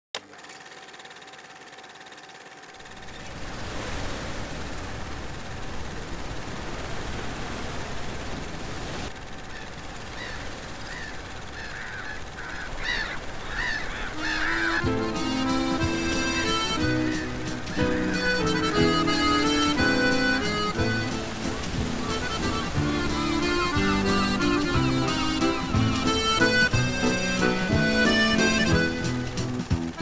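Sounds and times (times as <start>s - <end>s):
surf rushing: 2.9s - 11.1s, 13.2s - 30.0s
gulls calling: 9.2s - 30.0s
accordion music: 14.2s - 30.0s.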